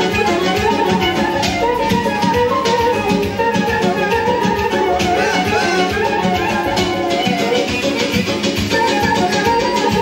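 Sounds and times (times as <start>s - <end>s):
clarinet and accordion melody: 0.0s - 10.0s
steady drum beat: 0.0s - 10.0s.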